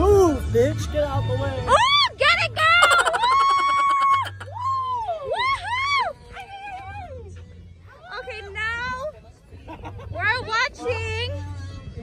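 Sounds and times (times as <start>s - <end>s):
high-pitched wordless wail: 2.6s - 4.7s.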